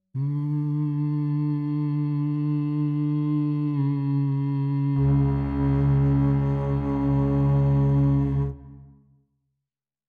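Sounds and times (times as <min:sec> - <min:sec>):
man humming one note: 0:00.2 - 0:09.0.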